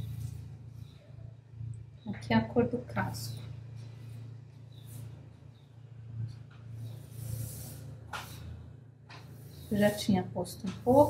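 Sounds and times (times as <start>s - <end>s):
paintbrush strokes on canvas: 0.0s - 1.1s, 3.1s - 5.6s, 6.3s - 11.0s
low steady hum: 0.0s - 11.0s.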